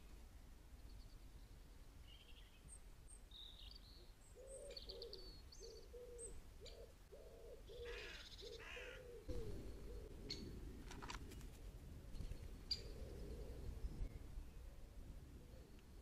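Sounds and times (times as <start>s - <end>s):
small birds chirping: 0.8s - 10.6s, 12.1s - 14.8s
pigeon cooing: 4.4s - 11.1s, 12.7s - 13.9s.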